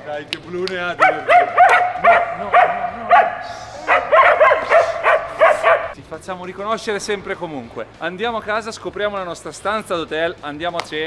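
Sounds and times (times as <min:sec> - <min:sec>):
dogs barking excitedly: 0:01.0 - 0:06.0.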